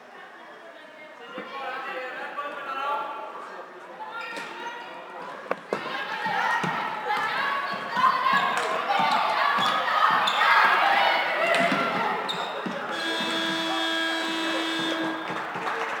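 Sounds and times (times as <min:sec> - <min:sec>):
ball and sticks clacking on floor: 0:05.5 - 0:05.9
steady horn: 0:12.9 - 0:15.4.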